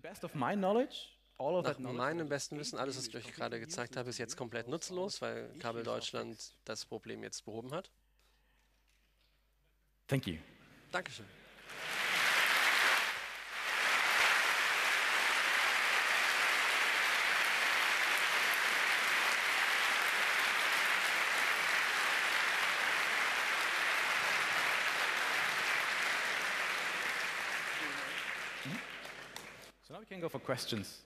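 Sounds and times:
large audience applauding: 11.6s - 29.7s.

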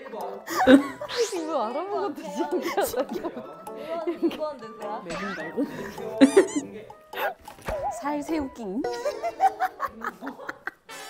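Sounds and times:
background music: 0.0s - 11.0s
person speaking: 2.0s - 7.4s.

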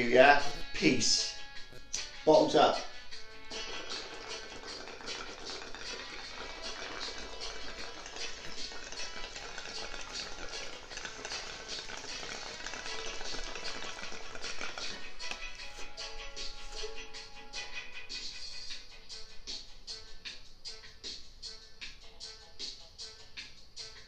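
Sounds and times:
background music: 0.0s - 24.0s
water bubbling in a bong: 3.5s - 15.2s.

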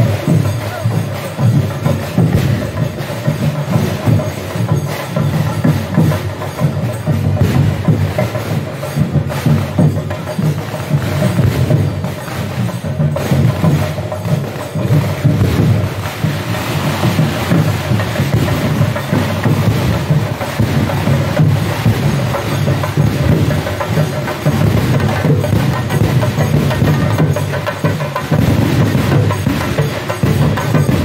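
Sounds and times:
crowd noise: 0.0s - 7.4s, 11.0s - 31.0s
drums and percussion playing: 0.0s - 31.0s.

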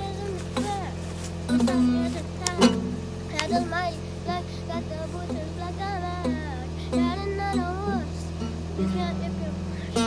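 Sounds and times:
acoustic guitar strumming: 0.0s - 10.0s
child singing: 0.0s - 10.0s.

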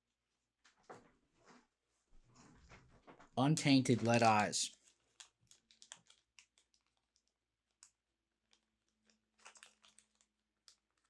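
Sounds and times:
small objects clicking: 4.7s - 11.0s.

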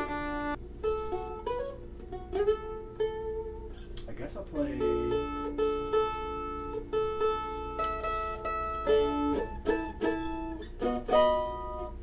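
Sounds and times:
mandolin strummed chords: 0.0s - 12.0s.

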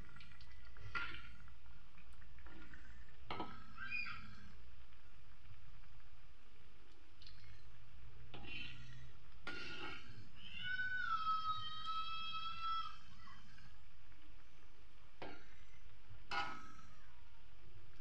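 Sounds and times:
food frying in oil: 0.0s - 11.0s.

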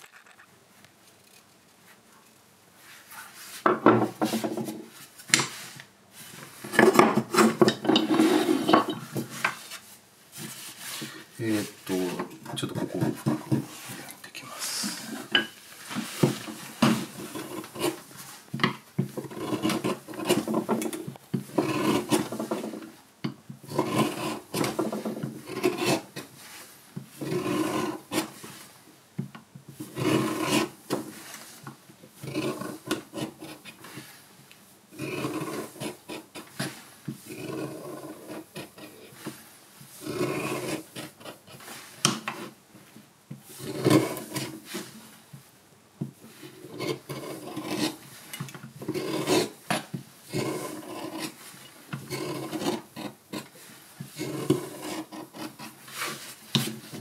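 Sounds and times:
carving blade scraping wood: 6.8s - 9.4s, 16.0s - 23.0s, 23.6s - 26.5s, 27.1s - 28.6s, 29.8s - 31.4s, 32.2s - 34.1s, 34.9s - 39.4s, 40.0s - 42.6s, 43.4s - 44.9s, 46.4s - 57.0s.

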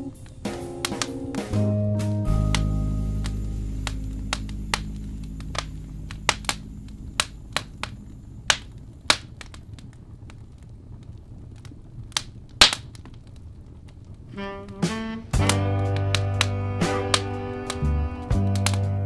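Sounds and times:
jazz music: 0.0s - 8.9s, 14.3s - 19.0s
wood fire crackling: 0.0s - 19.0s.

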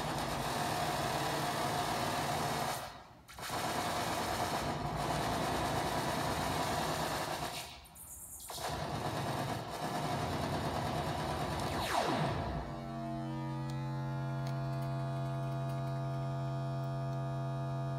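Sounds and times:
synthesizer drone buzz: 11.7s - 17.9s.

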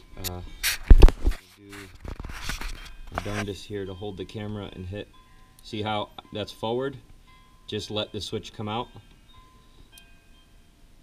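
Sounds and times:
light rubbing: 0.2s - 3.9s.

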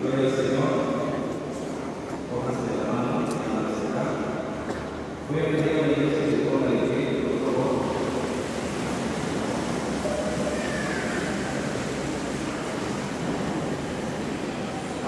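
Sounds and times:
crowd noise in echoing hall: 0.0s - 15.0s.

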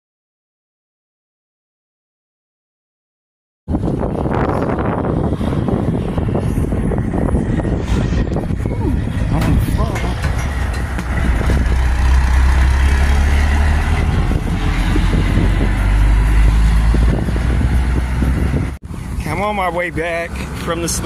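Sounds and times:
low engine rumble: 3.7s - 21.0s.

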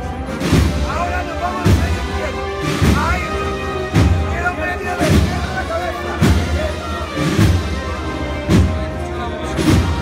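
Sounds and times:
wind band playing a processional march: 0.0s - 10.0s.

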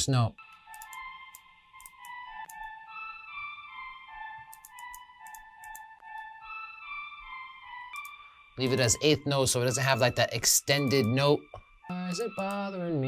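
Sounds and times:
flute melody: 0.4s - 13.0s.

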